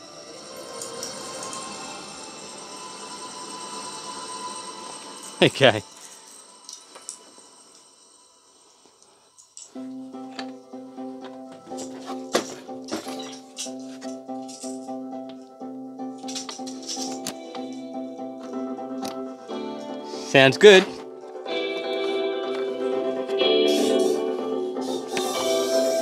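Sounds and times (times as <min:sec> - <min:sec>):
music through speaker: 0:09.7 - 0:26.0.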